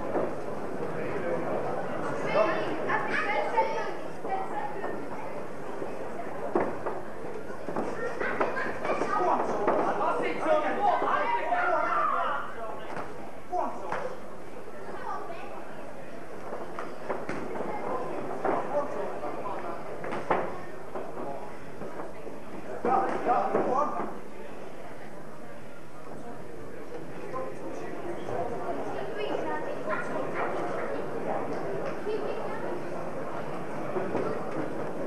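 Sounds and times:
spectators shouting and talking: 0.0 - 16.4
spectators chattering: 0.0 - 35.0
loud shouts: 10.9 - 12.6.

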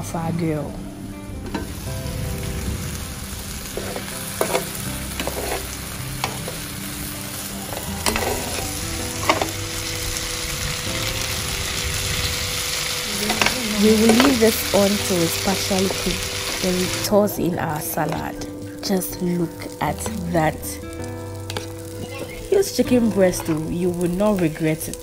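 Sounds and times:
meat sizzling in a grill pan: 1.6 - 25.0
metal spoons clinking on pan: 3.8 - 6.6.

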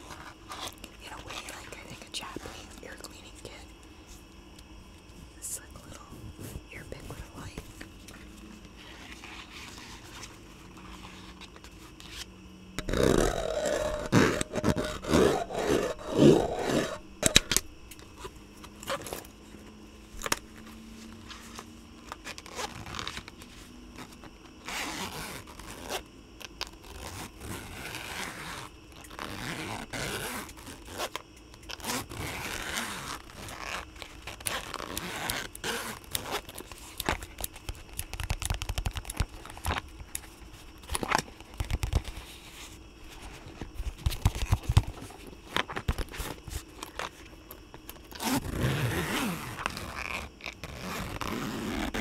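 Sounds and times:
tools scraping on microphone: 12.8 - 17.6.

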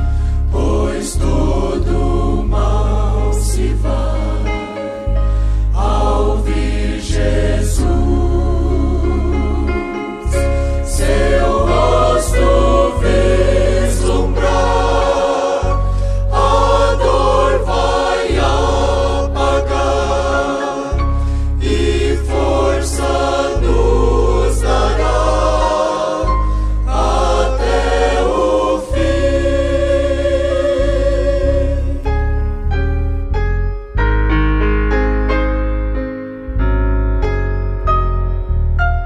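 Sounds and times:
choir singing a hymn: 0.0 - 32.5
sustained bass notes: 0.0 - 39.0.

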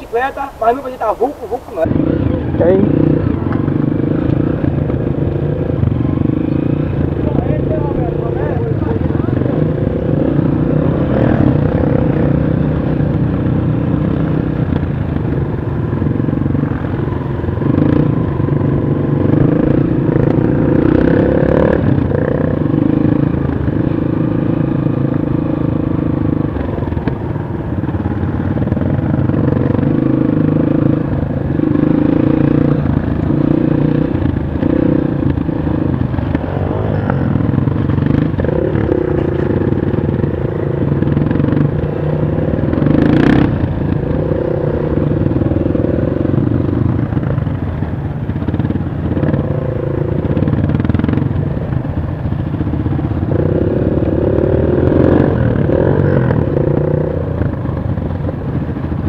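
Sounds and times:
dirt bike engine revving: 0.0 - 14.7, 15.8 - 26.8, 28.1 - 47.4, 52.4 - 57.6.

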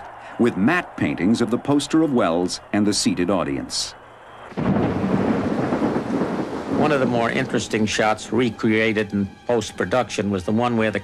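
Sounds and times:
thunder: 4.5 - 8.4
heavy rain: 4.5 - 8.6.

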